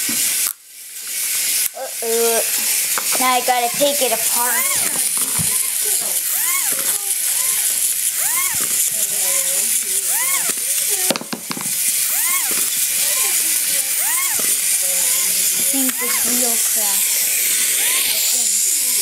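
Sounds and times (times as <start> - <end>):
toy robot whirring: 0.0 - 19.0
toy robot chirp: 1.2 - 19.0
sharp clicks: 2.6 - 16.5.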